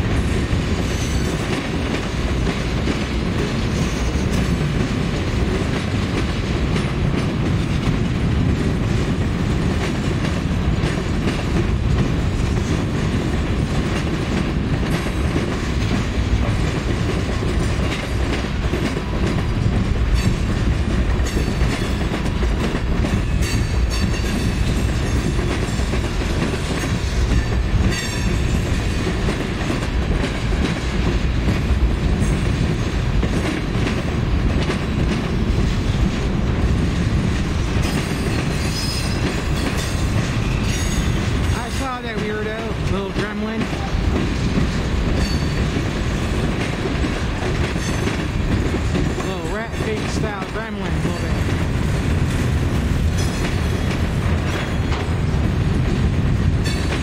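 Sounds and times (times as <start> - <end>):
clickety-clack over rail joints: 0.0 - 57.0
train wheels rumbling on rails: 0.0 - 57.0.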